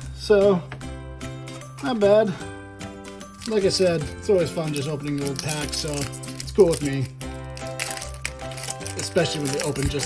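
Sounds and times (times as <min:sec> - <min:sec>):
background music: 0:00.0 - 0:10.0
foil wrapper crinkling and tearing: 0:03.2 - 0:10.0.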